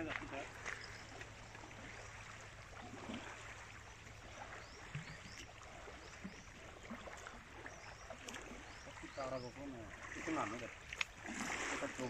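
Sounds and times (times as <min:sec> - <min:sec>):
small waves lapping on sand: 0:00.0 - 0:12.0.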